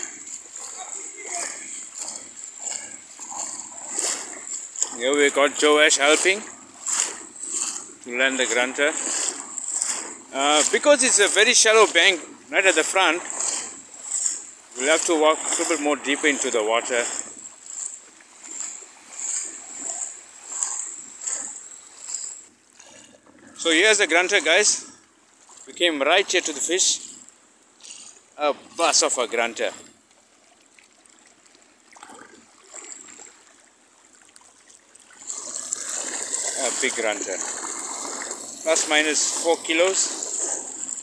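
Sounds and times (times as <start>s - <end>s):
footsteps wading through water: 0.0s - 41.0s.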